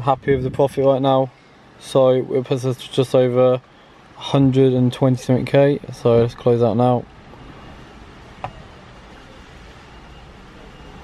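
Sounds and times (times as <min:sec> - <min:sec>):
low car cabin rumble: 0:00.0 - 0:01.0, 0:07.3 - 0:09.4.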